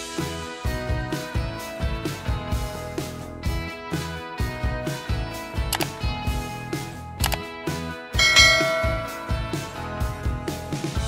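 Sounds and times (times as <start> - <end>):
background music with beat: 0.0 - 11.0
bright bell chime: 8.2 - 9.6.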